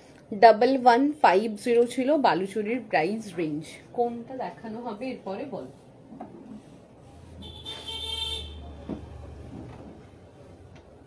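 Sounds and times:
vehicle horn: 7.4 - 8.8.

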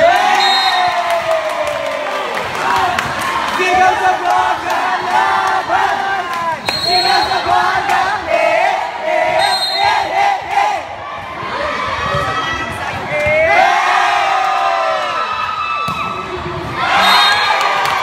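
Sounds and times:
crowd shouting and cheering: 0.0 - 18.0.

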